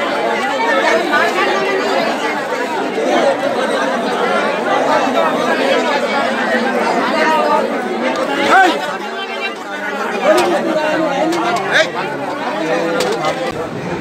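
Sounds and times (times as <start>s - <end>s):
crowd chatter: 0.0s - 14.0s.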